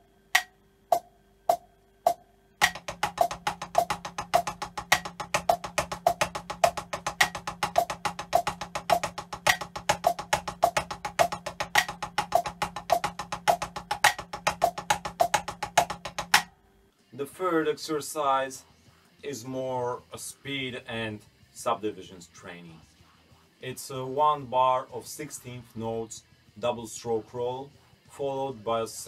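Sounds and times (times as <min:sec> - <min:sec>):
drumsticks on practice pad: 0:00.0 - 0:16.5
metronome clicks: 0:00.4 - 0:16.5.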